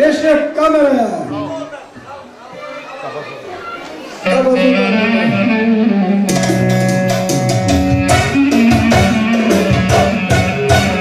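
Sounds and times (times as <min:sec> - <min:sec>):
live band playing dance music: 0:04.2 - 0:11.0
drum beat: 0:06.3 - 0:11.0.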